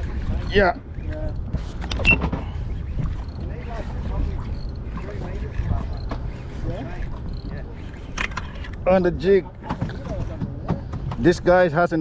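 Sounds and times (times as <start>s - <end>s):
wind and water rumble: 0.0s - 12.0s.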